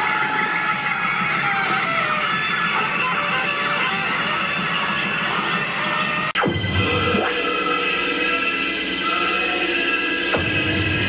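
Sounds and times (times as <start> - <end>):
distorted noise music: 0.0 - 11.0.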